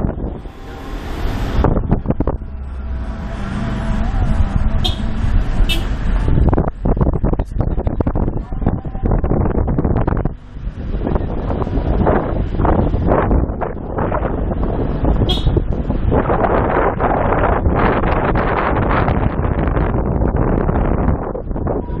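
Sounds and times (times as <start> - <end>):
vehicle running noise: 0.0 - 22.0
wind buffeting microphone: 0.0 - 22.0.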